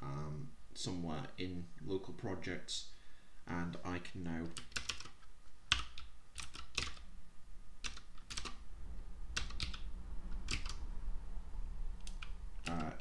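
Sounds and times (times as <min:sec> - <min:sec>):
faint steady low hum: 0:00.0 - 0:13.0
keyboard keystroke clicks: 0:10.4 - 0:10.8.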